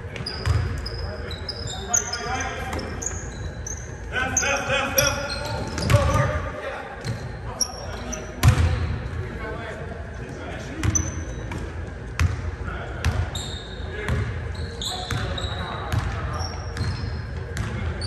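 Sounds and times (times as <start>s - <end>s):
sneaker squeaks: 0.0s - 9.1s, 10.7s - 18.0s.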